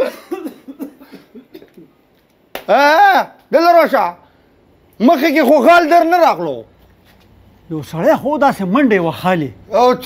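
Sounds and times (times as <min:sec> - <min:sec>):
man coughing: 0:00.0 - 0:02.0.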